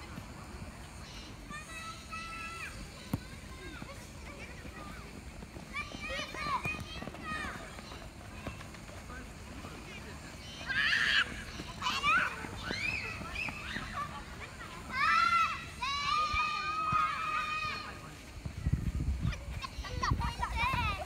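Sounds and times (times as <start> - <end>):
children shouting while playing: 1.5 - 5.1, 5.7 - 8.6, 10.4 - 18.1, 19.2 - 21.0.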